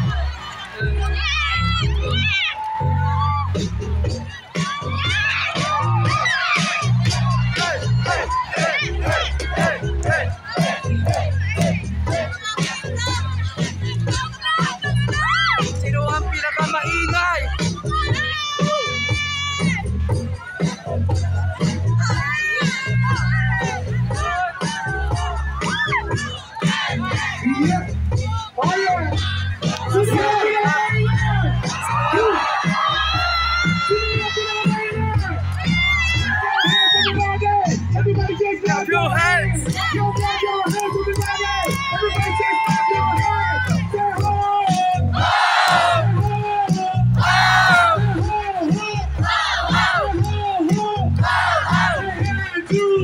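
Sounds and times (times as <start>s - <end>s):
crowd cheering and shouting: 0.0s - 53.0s
music with bass line: 0.0s - 53.0s.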